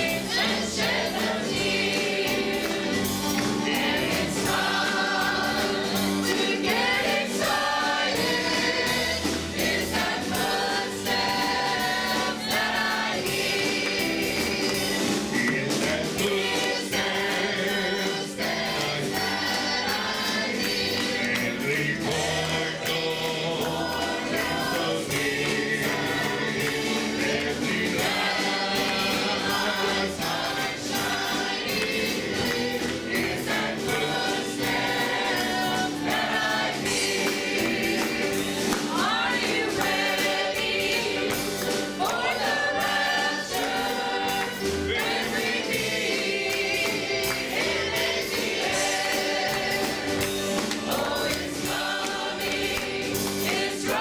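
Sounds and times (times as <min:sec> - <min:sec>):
gospel choir singing: 0:00.0 - 0:54.0.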